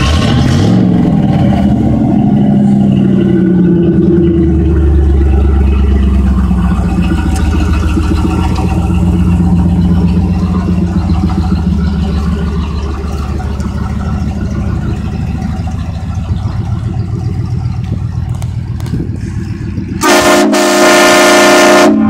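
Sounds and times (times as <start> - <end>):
car engine rumbling: 0.0 - 22.0
train horn blasts: 20.0 - 22.0.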